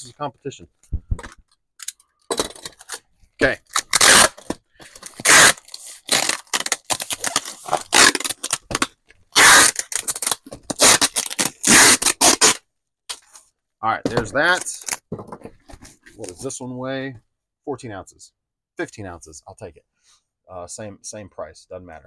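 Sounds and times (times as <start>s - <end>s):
cardboard scraping and tearing: 2.4s - 12.6s.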